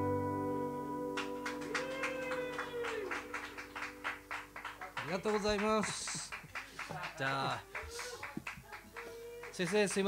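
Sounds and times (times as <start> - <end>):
acoustic guitar chord ringing: 0.0 - 4.6.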